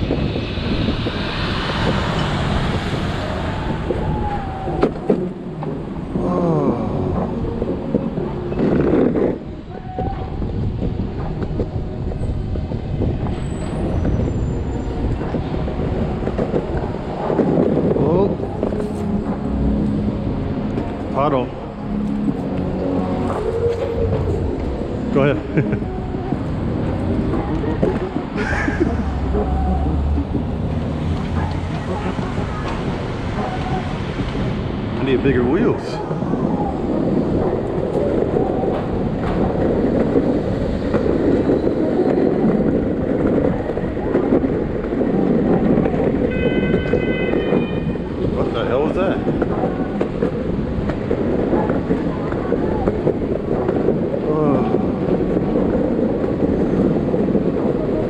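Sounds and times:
road and wind noise: 0:00.0 - 0:58.0.

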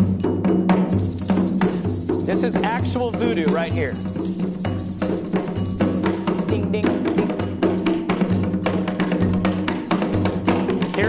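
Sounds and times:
layered ritual drumming: 0:00.0 - 0:11.0.

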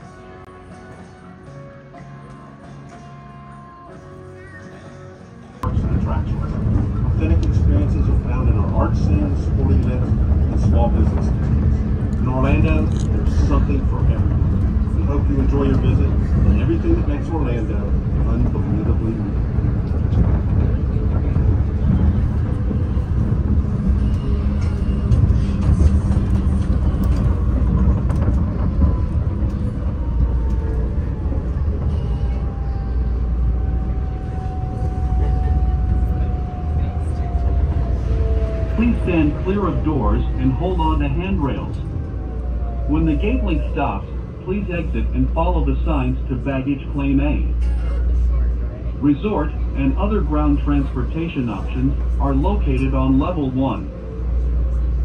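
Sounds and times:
people's voices: 0:03.6 - 0:55.0
train rumbling: 0:05.4 - 0:55.0.

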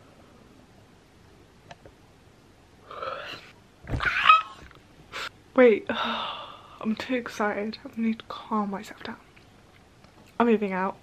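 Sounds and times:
woman squealing excitedly: 0:03.9 - 0:04.7.

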